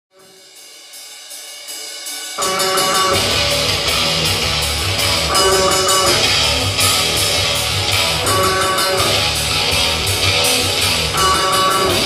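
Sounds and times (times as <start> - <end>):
cymbals struck in steady pulse: 0.2 - 12.0.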